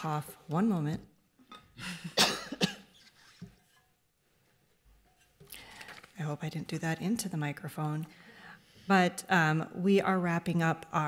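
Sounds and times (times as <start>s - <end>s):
woman coughing: 2.0s - 3.0s.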